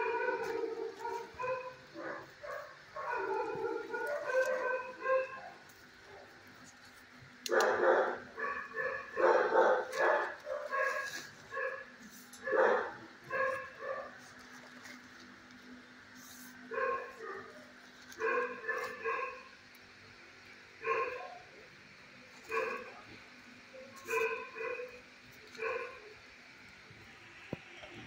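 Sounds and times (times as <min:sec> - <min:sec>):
dogs barking: 0:00.0 - 0:06.5, 0:07.4 - 0:14.5, 0:16.5 - 0:19.7, 0:20.7 - 0:21.8, 0:22.4 - 0:26.2.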